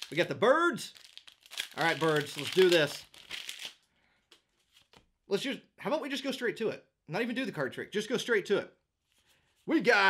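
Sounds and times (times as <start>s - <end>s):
foil wrapper rustling: 0.9s - 3.8s.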